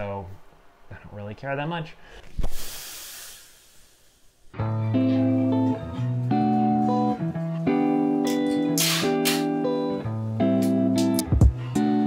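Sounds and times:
hiss: 2.4 - 4.4.

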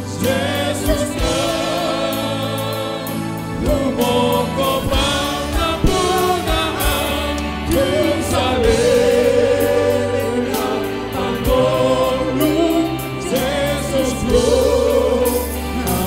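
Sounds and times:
keyboards: 0.0 - 16.0
drums keeping the beat: 0.1 - 16.0.

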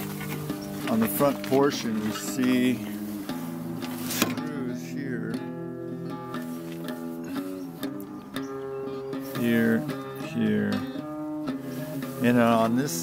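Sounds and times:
acoustic guitar background music: 0.0 - 13.0.

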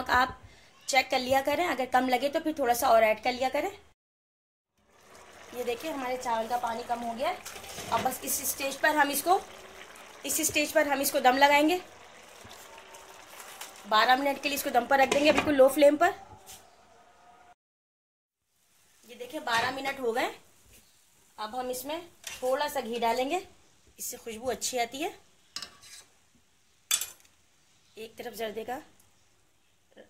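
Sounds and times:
pot of rice bubbling: 4.8 - 15.6.

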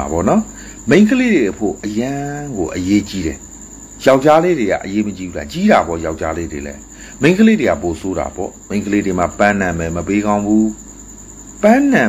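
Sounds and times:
man speaking: 0.0 - 3.4, 4.0 - 10.8, 11.6 - 12.0
cricket trill: 0.0 - 12.0.

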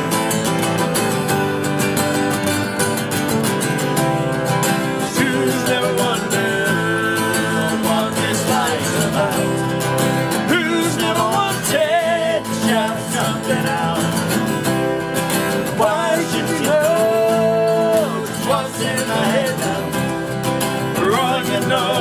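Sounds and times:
acoustic guitars strumming: 0.0 - 22.0
man singing: 4.9 - 14.7, 15.4 - 22.0.

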